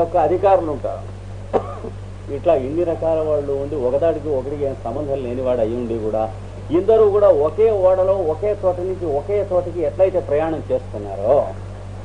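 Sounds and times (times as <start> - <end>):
man talking: 0.0 - 1.7, 2.3 - 11.6
steady low hum: 0.0 - 12.0
man clearing throat: 1.5 - 2.0.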